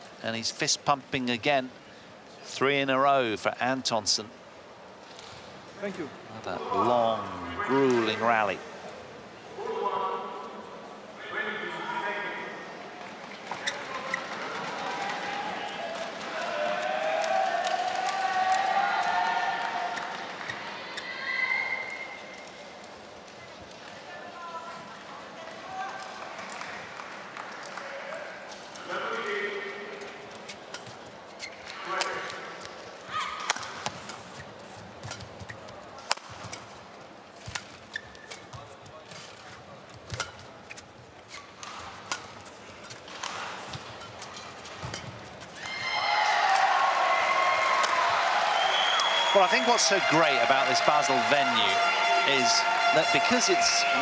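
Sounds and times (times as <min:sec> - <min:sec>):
shoes squeaking on court: 0:13.2 - 0:14.7, 0:30.4 - 0:36.7, 0:37.3 - 0:45.8
crowd cheering and shouting: 0:14.5 - 0:22.0, 0:45.6 - 0:54.0
rackets hitting shuttlecock: 0:33.4 - 0:36.7.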